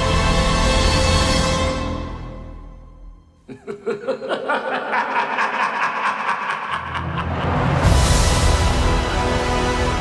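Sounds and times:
man cackling laugh: 3.5s - 7.9s.

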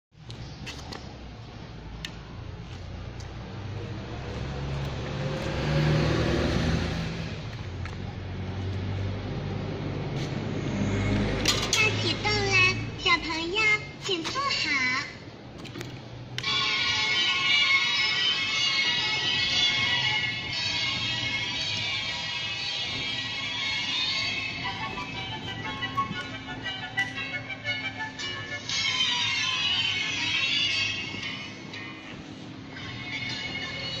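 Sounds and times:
recorded children's song: 11.7s - 13.9s, 16.4s - 34.0s
electronic melody from speaker: 16.4s - 31.6s
kiddie ride humming: 16.4s - 34.0s.

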